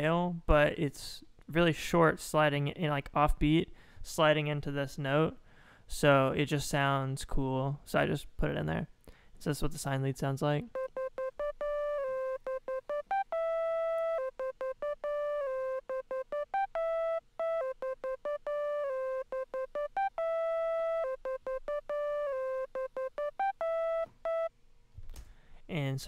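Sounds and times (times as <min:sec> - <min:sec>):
synth sine-wave lead melody: 0:10.7 - 0:24.5.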